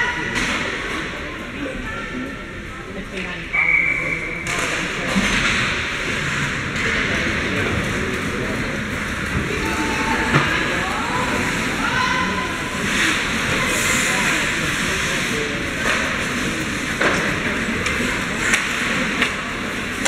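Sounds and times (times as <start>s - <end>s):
crowd chatter and calls: 0.0s - 20.0s
skate blades on ice: 12.6s - 20.0s
hockey stick and puck knocks: 17.0s - 19.4s.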